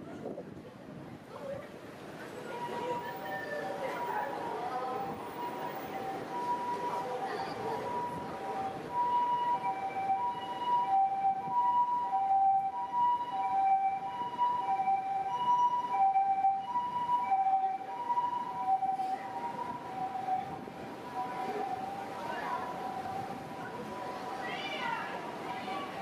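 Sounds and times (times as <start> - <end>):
street traffic noise: 0.0 - 26.0
two-tone ambulance siren: 2.4 - 24.8.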